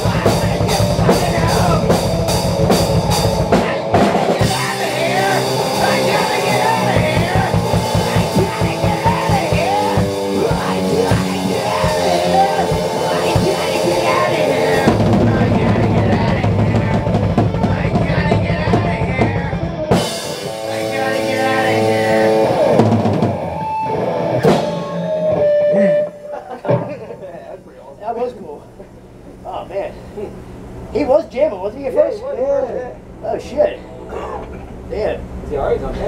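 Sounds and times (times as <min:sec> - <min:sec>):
punk band playing loud: 0:00.0 - 0:27.0.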